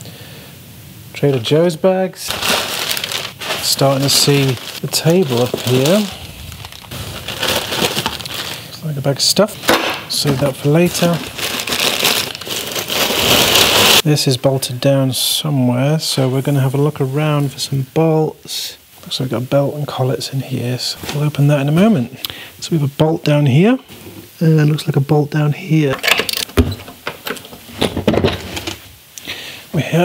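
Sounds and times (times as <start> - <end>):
packing paper rustling and crinkling: 1.3 - 14.0.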